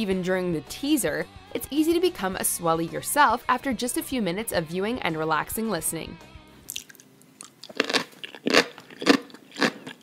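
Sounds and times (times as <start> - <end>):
crisp chewing crunches: 6.7 - 10.0.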